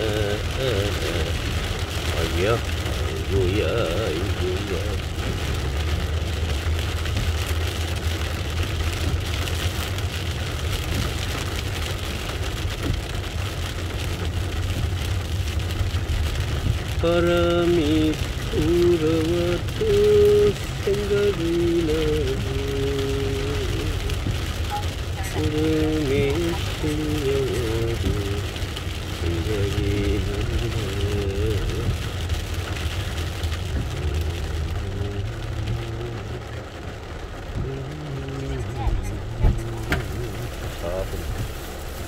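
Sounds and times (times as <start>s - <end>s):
engine and tyres rumbling: 0.0s - 42.0s
heavy rain on car: 0.0s - 42.0s.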